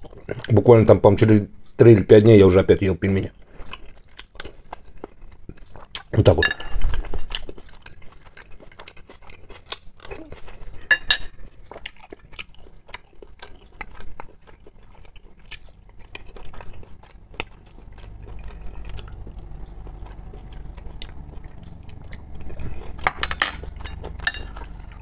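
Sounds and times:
quiet chewing: 0.0 - 2.4, 3.2 - 25.0
cutlery clinking on a china plate: 6.4 - 6.8, 10.9 - 11.4, 23.0 - 24.6.

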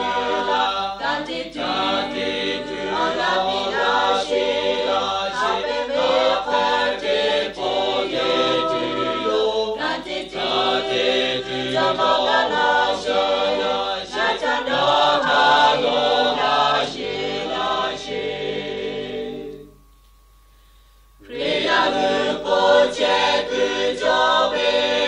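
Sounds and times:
choir singing: 0.0 - 19.8, 21.2 - 25.0.

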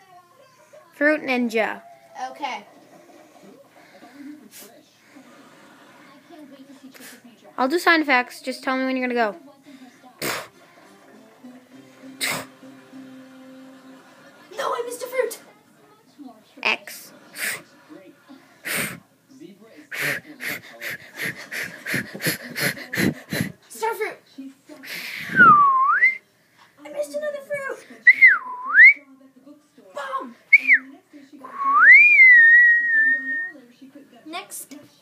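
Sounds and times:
person whistling: 25.3 - 26.2, 31.5 - 33.5.

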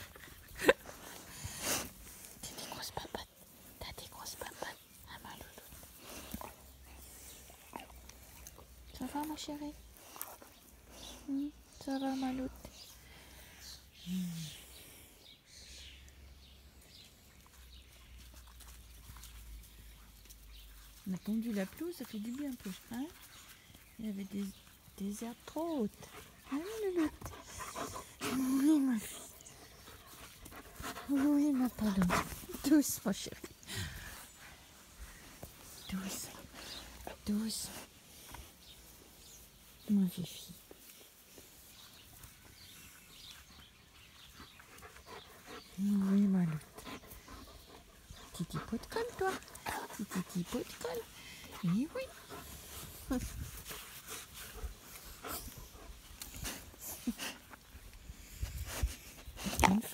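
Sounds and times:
dog panting: 25.8 - 33.0, 44.2 - 57.7.

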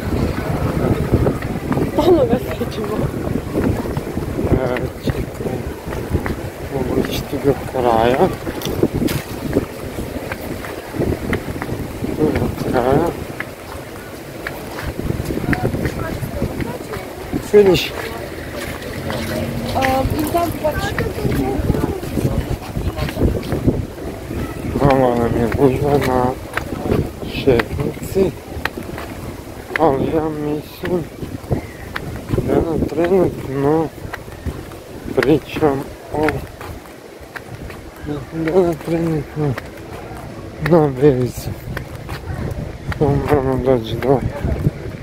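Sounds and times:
people's voices: 0.0 - 45.0
wind buffeting microphone: 0.0 - 45.0.

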